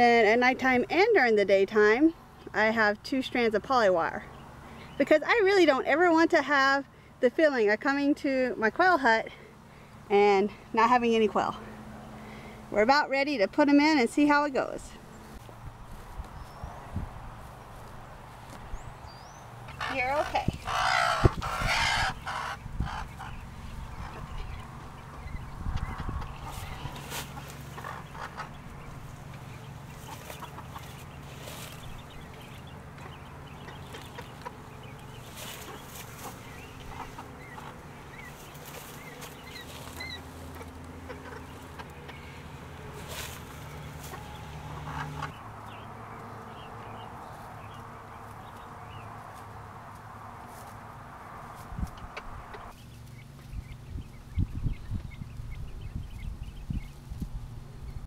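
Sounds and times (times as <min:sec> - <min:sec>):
chicks peeping: 0:15.9 - 0:49.4, 0:51.6 - 0:57.3
hen clucking: 0:19.6 - 0:49.4, 0:51.6 - 0:52.8.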